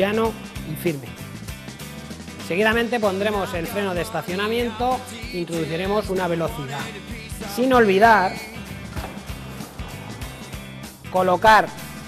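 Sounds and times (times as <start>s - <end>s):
music with a steady beat: 0.0s - 12.0s.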